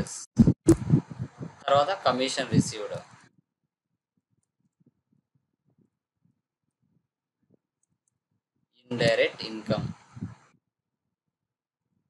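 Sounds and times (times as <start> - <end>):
person speaking: 0.0 - 3.2, 8.9 - 10.4.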